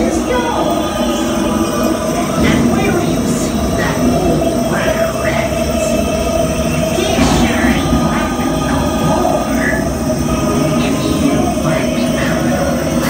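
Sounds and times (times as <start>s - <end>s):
conveyor chain rattle and hum: 0.0s - 13.0s
music: 0.0s - 13.0s
recorded voices: 0.0s - 13.0s.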